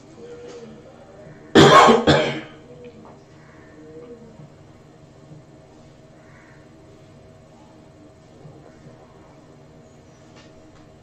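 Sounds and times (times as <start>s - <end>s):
man coughing: 1.6s - 2.6s.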